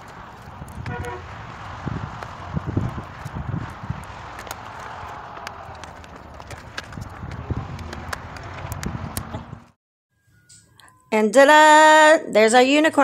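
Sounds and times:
wind gusts on microphone: 0.0 - 9.8.

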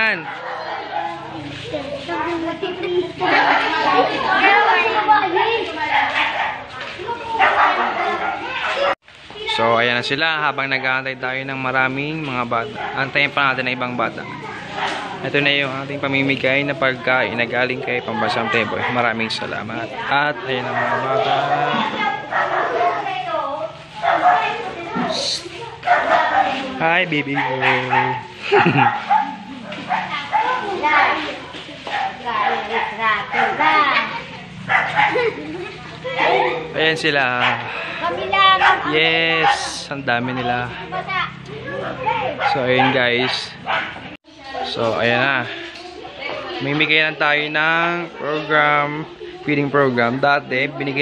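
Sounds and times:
children chattering and calling: 0.0 - 51.0.

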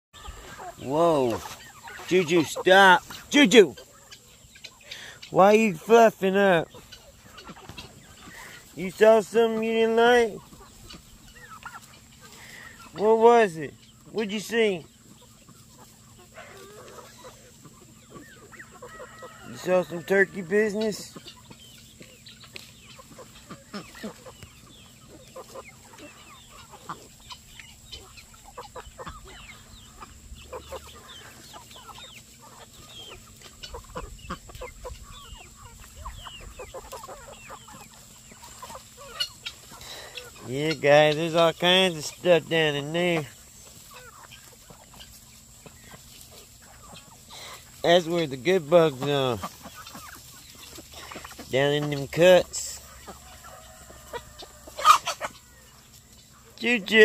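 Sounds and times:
chickens clucking: 0.1 - 57.0.

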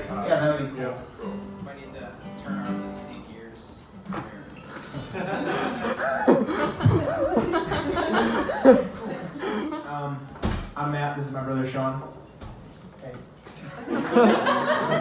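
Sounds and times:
person chuckling: 5.2 - 9.8.

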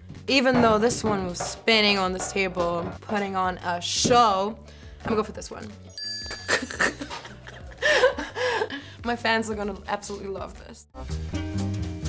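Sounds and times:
background music: 0.0 - 12.0
bell-like chime: 5.9 - 7.4.

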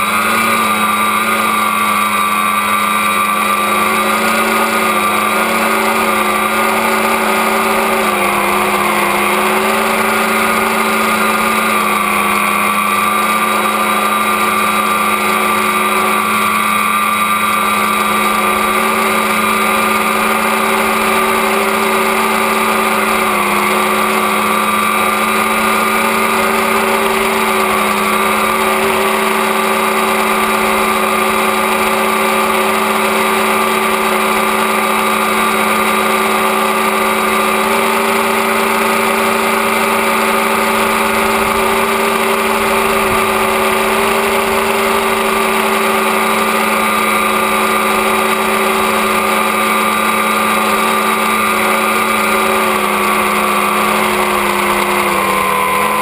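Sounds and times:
drone motors and propellers whining: 0.0 - 56.0.

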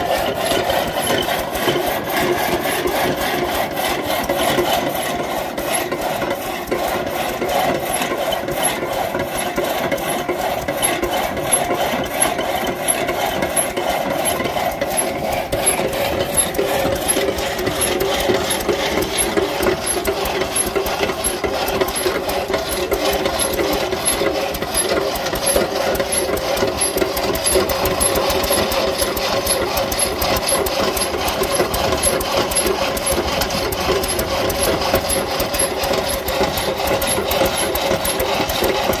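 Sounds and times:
engine chugging steadily: 0.0 - 39.0
saw blade rasping through log: 0.0 - 39.0.

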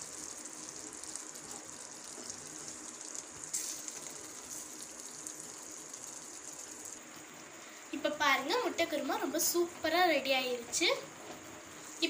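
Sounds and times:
gravy bubbling and sizzling: 0.0 - 12.0.

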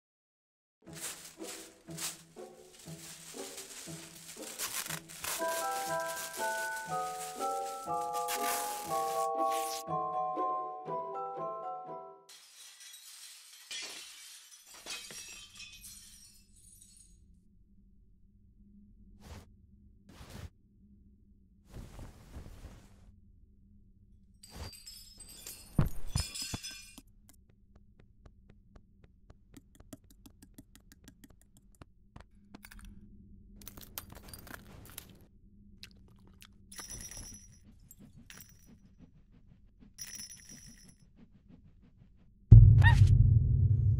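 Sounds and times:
scuffing noise: 0.9 - 9.8
glass breaking: 12.3 - 17.1
glass shattering and crackling: 12.3 - 17.2, 24.6 - 27.0
low rumble: 42.5 - 43.9.

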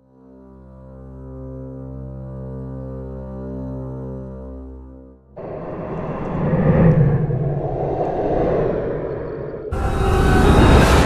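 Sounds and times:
low rumbling whoosh: 5.4 - 11.0.

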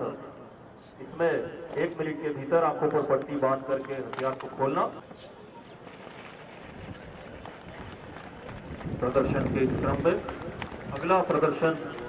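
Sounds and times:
boots jogging on pavement: 6.9 - 12.0.

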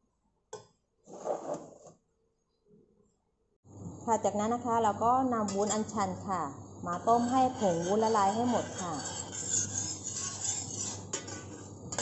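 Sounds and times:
metal ladle scraping saucepan: 5.5 - 5.9, 6.9 - 12.0.

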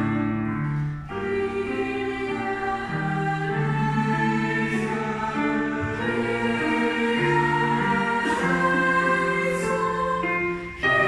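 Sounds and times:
youth choir singing: 1.1 - 11.0.

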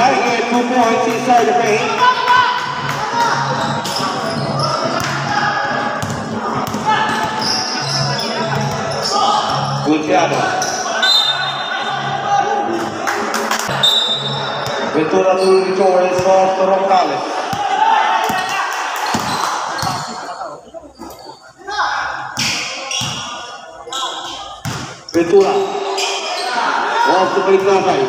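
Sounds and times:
voices on a court: 0.0 - 28.0.

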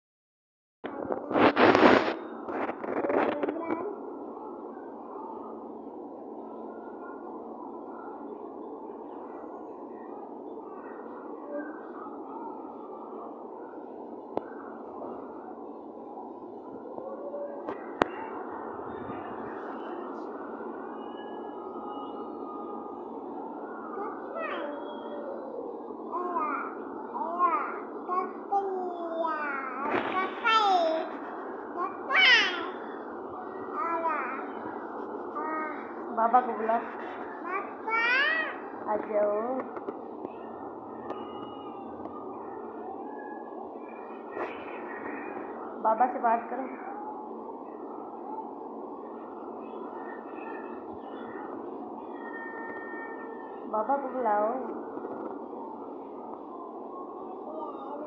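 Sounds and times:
faint indistinct sounds: 0.8 - 58.0
steady room hiss: 0.9 - 58.0.

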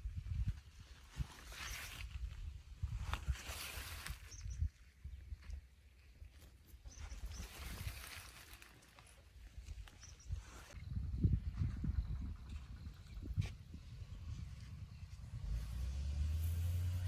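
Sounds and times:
footsteps through grass: 0.7 - 4.5, 6.4 - 10.8.

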